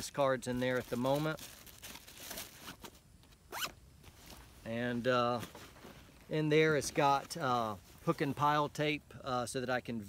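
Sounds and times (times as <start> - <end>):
zipper being pulled: 3.5 - 3.8.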